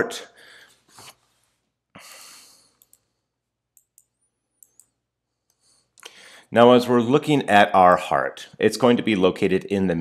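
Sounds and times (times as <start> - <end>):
faint computer mouse clicks: 2.8 - 3.1, 3.8 - 6.1.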